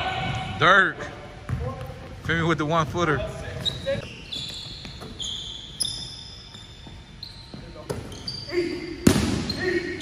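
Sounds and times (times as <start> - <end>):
sneakers squeaking on hardwood: 1.4 - 10.0.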